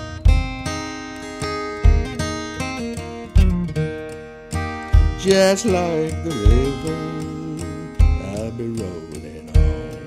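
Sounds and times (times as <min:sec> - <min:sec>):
acoustic guitar strumming: 0:00.0 - 0:10.0
person singing: 0:05.2 - 0:10.0.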